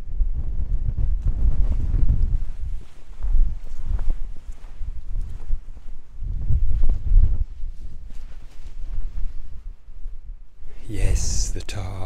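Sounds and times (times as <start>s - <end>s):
wind buffeting microphone: 0.0s - 12.0s
footsteps on bare rock: 1.2s - 9.5s.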